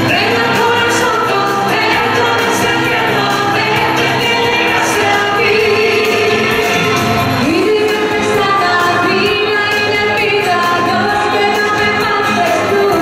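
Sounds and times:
band accompaniment with beat: 0.0s - 13.0s
male and female duo singing: 0.0s - 13.0s.

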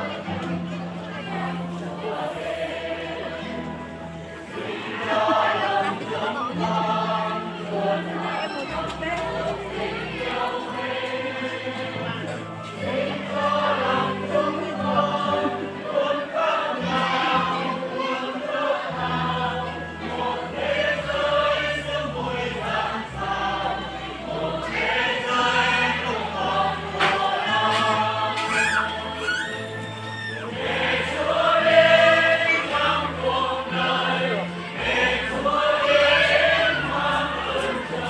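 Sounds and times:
choir singing a hymn: 0.0s - 38.0s.

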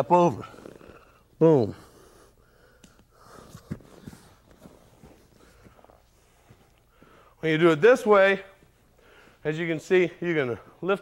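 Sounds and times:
heavy breathing: 0.4s - 7.4s, 8.8s - 9.5s
clothing rustling on a mat: 3.4s - 6.9s.

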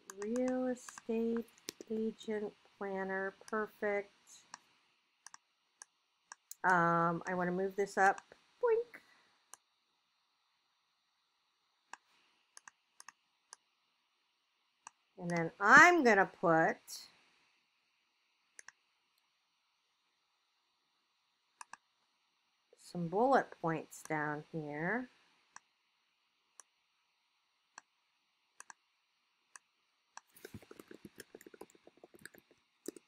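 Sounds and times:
computer mouse clicking: 0.0s - 2.0s, 5.2s - 6.6s, 11.9s - 13.6s, 18.6s - 18.8s, 21.6s - 21.8s, 28.6s - 28.8s, 29.5s - 33.0s.

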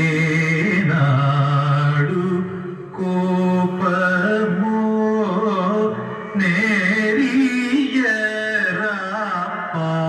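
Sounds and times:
man singing long notes: 0.0s - 10.0s.

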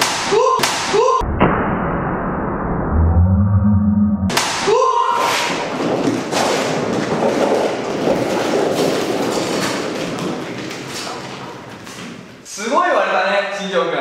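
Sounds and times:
rubber balls bouncing on floor: 5.5s - 12.3s.

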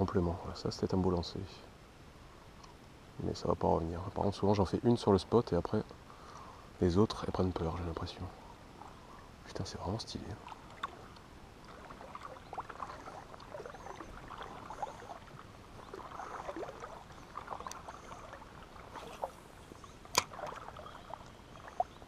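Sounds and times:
water splashing and gurgling: 8.8s - 22.0s.

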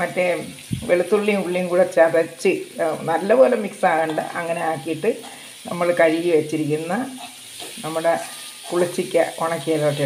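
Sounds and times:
paste sizzling in oil: 0.0s - 10.0s
steel spoon stirring in wok: 6.9s - 9.4s.

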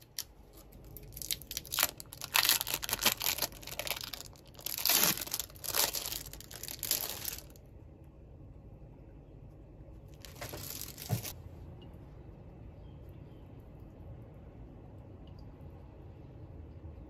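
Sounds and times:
plastic wrapper crinkling: 0.0s - 7.6s, 10.1s - 11.4s.

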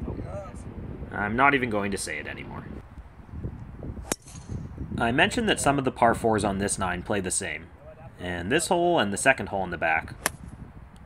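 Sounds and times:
golf club striking ball: 4.0s - 4.7s, 10.2s - 10.6s.

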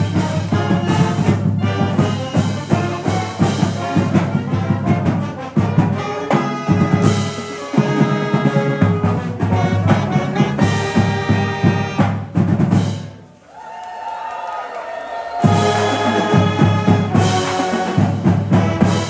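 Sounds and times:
marching band playing upbeat tune: 0.0s - 13.3s, 15.3s - 19.0s.

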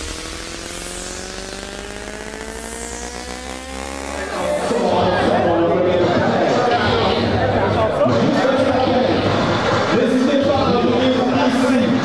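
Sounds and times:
synth tone gliding upward: 0.0s - 7.6s.

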